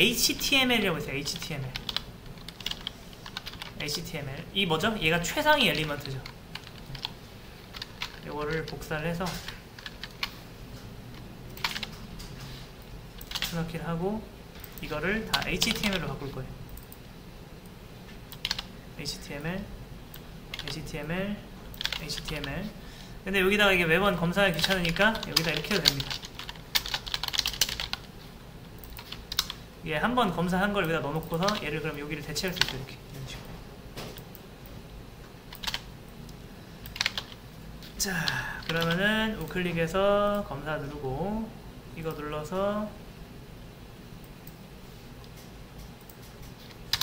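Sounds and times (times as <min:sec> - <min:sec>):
typing on computer keyboard: 0:01.3 - 0:04.1, 0:05.7 - 0:10.4, 0:11.5 - 0:12.3, 0:13.2 - 0:13.6, 0:14.6 - 0:16.1, 0:18.3 - 0:18.7, 0:21.8 - 0:22.5, 0:24.5 - 0:28.1, 0:28.8 - 0:29.6, 0:32.5 - 0:32.8, 0:35.5 - 0:35.9, 0:36.8 - 0:37.4, 0:46.0 - 0:47.0.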